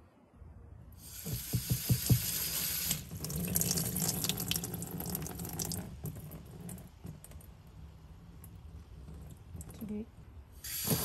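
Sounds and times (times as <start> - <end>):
water spraying and splashing: 1.0 - 6.6, 10.6 - 11.0
water dripping and trickling: 1.1 - 11.0.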